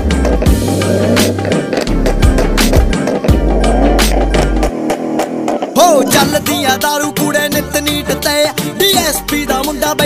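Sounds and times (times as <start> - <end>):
instrumental rap beat: 5.7 - 10.0.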